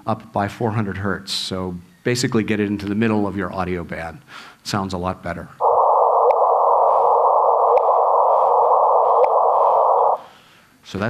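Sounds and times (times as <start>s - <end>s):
detector hiss: 5.6s - 10.4s.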